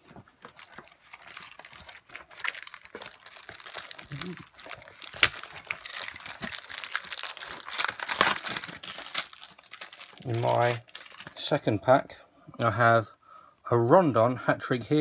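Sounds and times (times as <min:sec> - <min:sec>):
foil wrapper crinkling: 0:00.0 - 0:11.5.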